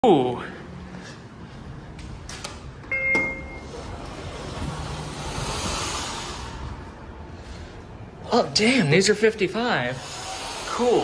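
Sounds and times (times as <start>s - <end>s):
elevator button click: 2.4s - 3.6s
short electronic beep: 2.9s - 3.8s.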